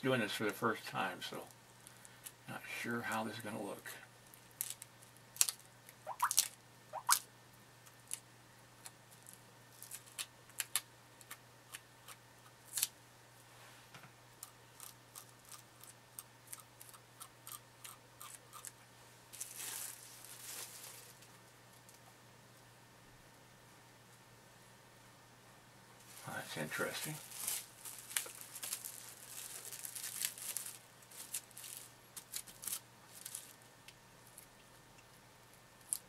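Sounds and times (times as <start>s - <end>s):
plastic wrap crinkling: 19.3s - 21.4s, 26.0s - 33.7s.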